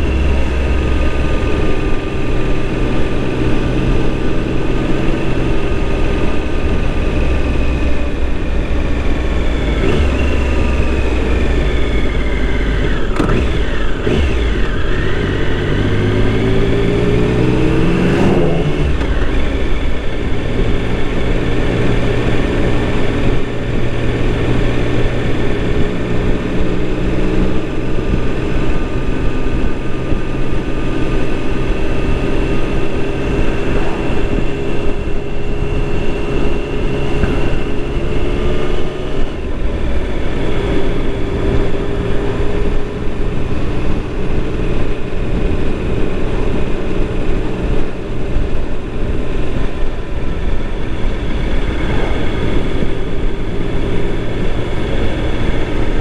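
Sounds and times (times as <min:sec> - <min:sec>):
gear change: 0:00.0 - 0:56.0
vehicle engine running: 0:00.0 - 0:56.0
wind rush: 0:00.0 - 0:56.0.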